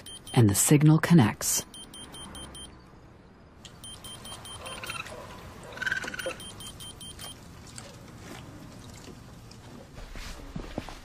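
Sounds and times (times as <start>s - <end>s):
short high electronic beeps: 1.6s - 2.8s, 3.8s - 5.1s, 6.2s - 7.4s.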